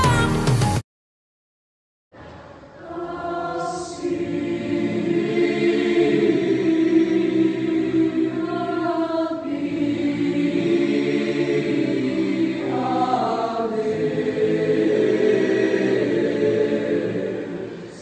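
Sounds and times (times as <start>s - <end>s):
choir singing sustained chords: 2.6s - 18.0s.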